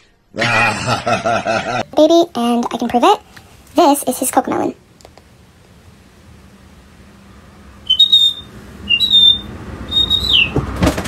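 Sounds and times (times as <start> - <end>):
high bird-like whistled calls: 7.9 - 10.6.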